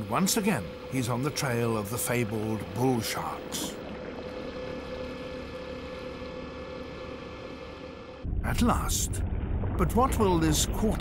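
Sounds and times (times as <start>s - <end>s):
underwater hum and rush: 0.0s - 11.0s.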